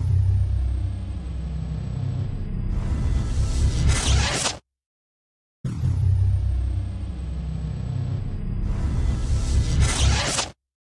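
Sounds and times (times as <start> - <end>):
heavy bass: 0.0 - 4.0, 5.7 - 10.0.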